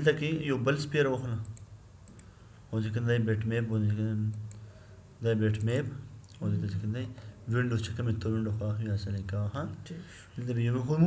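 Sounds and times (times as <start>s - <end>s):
computer mouse clicks: 1.4s - 2.3s, 4.3s - 4.6s
man speaking: 5.2s - 11.0s.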